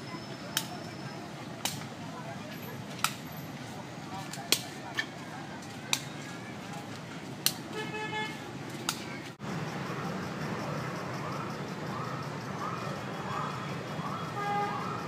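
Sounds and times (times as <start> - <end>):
outdoor background noise: 0.0 - 15.0.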